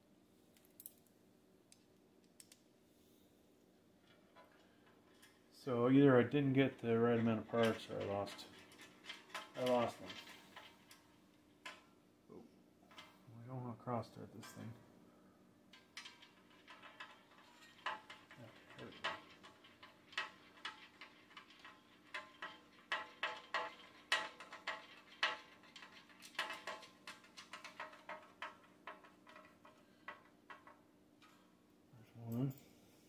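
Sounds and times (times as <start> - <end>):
metallic clicks of bolts: 1.7 - 2.7.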